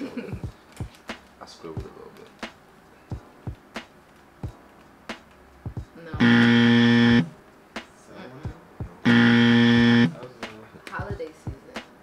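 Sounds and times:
game show buzzer: 6.2s - 7.4s, 9.1s - 10.2s.

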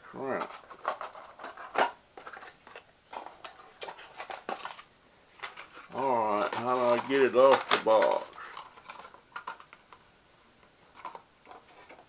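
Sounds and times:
person mumbling: 0.0s - 0.5s, 5.9s - 8.4s
packaging clicking and crackling: 0.4s - 10.0s, 10.9s - 12.0s.

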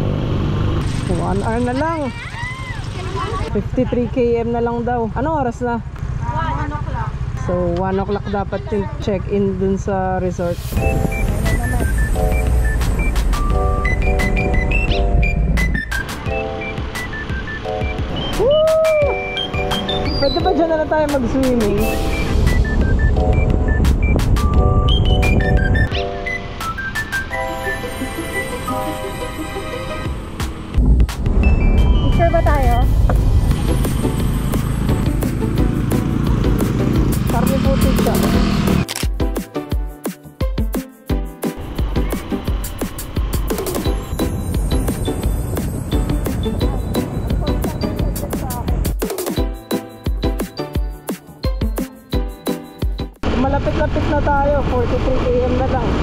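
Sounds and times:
background music with steady beat: 10.6s - 53.2s
motorcycle engine rumble: 30.2s - 38.8s.

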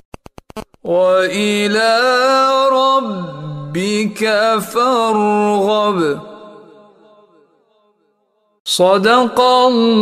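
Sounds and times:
man chanting recitation: 0.8s - 6.7s, 8.7s - 10.0s.

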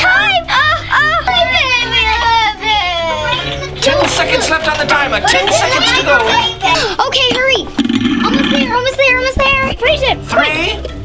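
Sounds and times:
children talking: 0.0s - 10.9s
background music: 0.0s - 11.0s.

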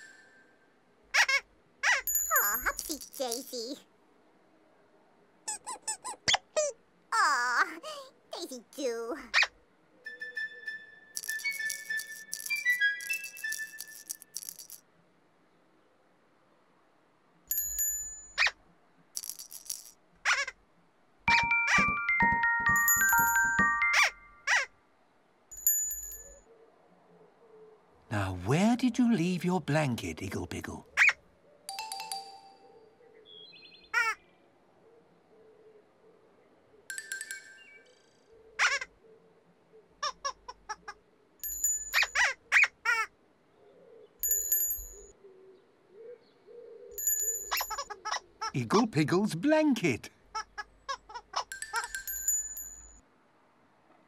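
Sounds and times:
bright chime-like tinkles: 2.1s - 3.1s, 17.5s - 18.4s, 21.3s - 24.4s, 25.5s - 26.4s, 31.7s - 32.8s, 41.4s - 42.2s, 44.2s - 45.1s, 47.0s - 47.9s, 51.5s - 53.0s
squeaky pitch-sliding vocal noises: 5.5s - 9.6s
rattling shakes: 11.2s - 14.8s, 19.2s - 20.0s
bright chime: 21.3s - 24.4s, 31.7s - 32.8s.

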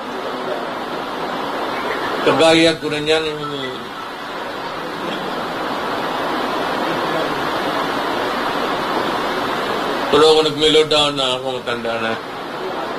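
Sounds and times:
steady rushing noise: 0.0s - 12.9s.

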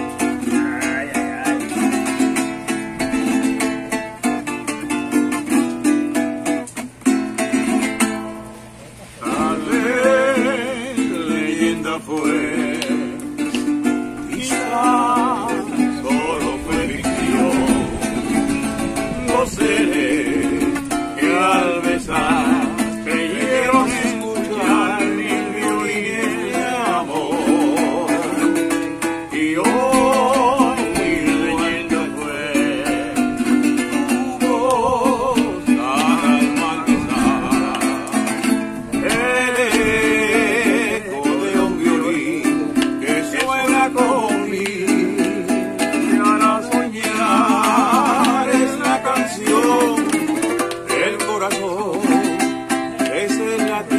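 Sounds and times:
small guitar strumming: 0.0s - 53.9s
men singing together: 9.2s - 53.9s.

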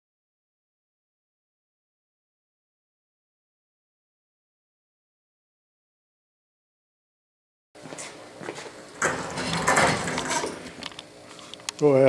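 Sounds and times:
table casters rolling on floor: 8.6s - 11.6s
lathe rattling and clattering: 9.0s - 10.9s.

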